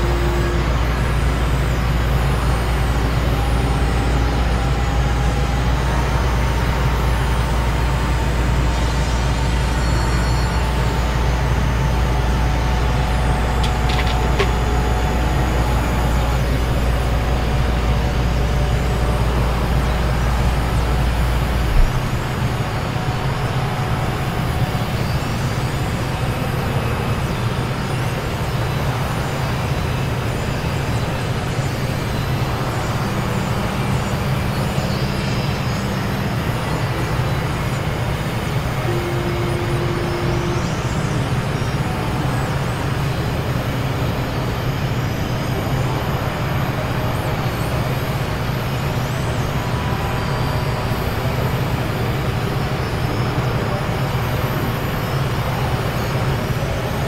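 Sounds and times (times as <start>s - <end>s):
faint high gliding whistles: 0.0s - 57.0s
synthesizer noise drone: 0.0s - 57.0s.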